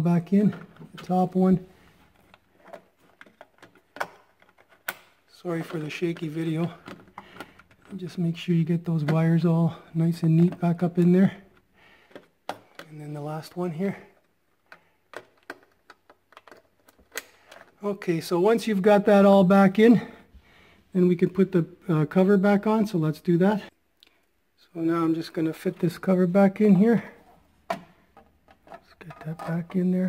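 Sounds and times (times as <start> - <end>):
plastic connectors clicking: 14.2 - 17.8.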